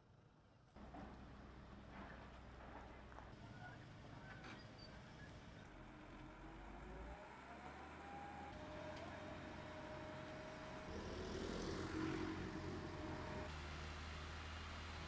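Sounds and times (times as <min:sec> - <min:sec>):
heavy machinery engine hum: 0:05.8 - 0:15.0.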